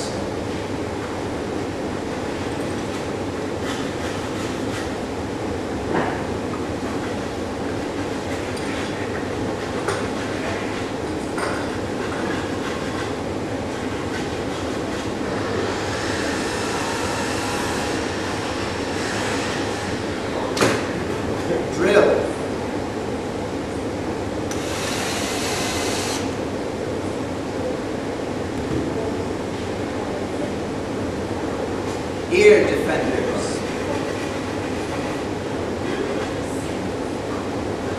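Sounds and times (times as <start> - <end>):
ventilation hum and hiss: 0.0 - 37.9.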